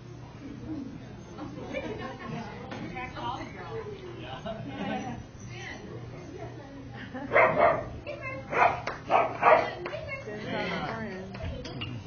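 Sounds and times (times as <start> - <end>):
low background chatter: 0.0 - 12.0
dog barking: 7.3 - 9.8.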